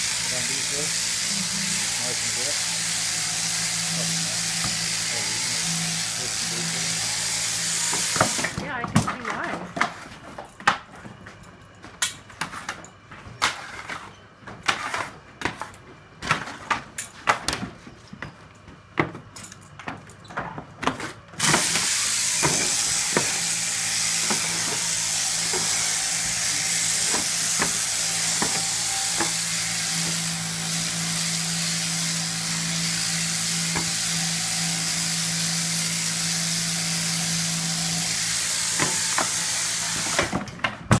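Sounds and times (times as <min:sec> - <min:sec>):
shearing handpiece buzzing: 0:00.0 - 0:09.5, 0:21.4 - 0:40.5.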